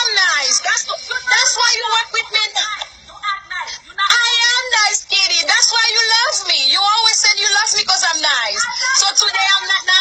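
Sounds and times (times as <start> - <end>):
woman talking in a quarrel: 0.0 - 10.0.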